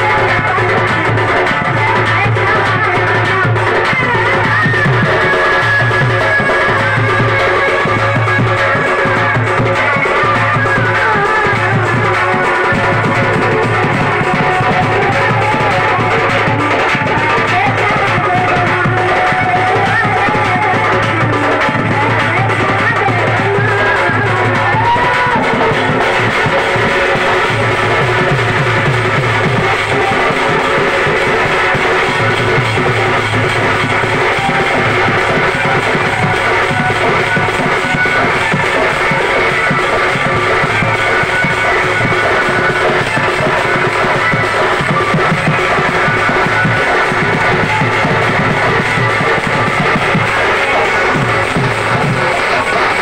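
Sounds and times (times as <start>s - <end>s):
barrel drum beating: 0.0s - 53.0s.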